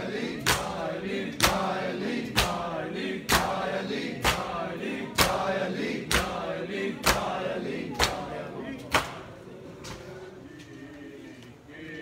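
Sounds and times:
chanting voices: 0.0s - 12.0s
men slapping chests in unison: 0.4s - 9.3s.

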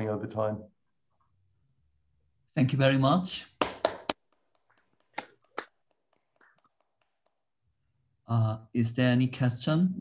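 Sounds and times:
sharp hand claps: 3.6s - 7.4s.

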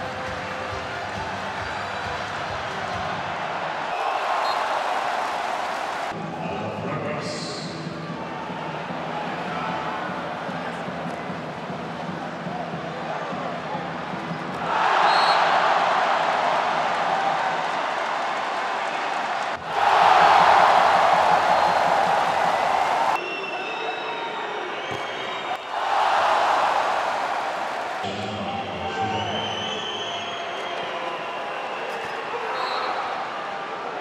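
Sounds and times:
spectators cheering: 0.0s - 7.0s, 7.6s - 34.0s
crowd noise: 0.0s - 34.0s
whistles: 3.9s - 4.9s, 15.0s - 15.6s, 21.4s - 22.0s, 23.1s - 25.8s, 28.6s - 33.5s.

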